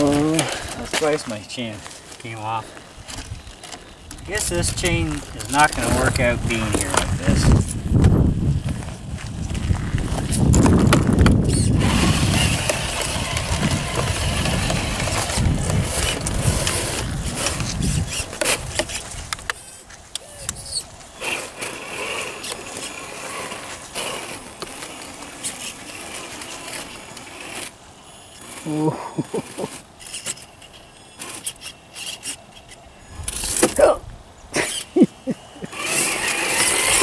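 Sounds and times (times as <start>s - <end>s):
toy car electric motor running: 3.1s - 7.8s, 10.3s - 33.8s, 34.6s - 35.0s, 35.6s - 37.0s.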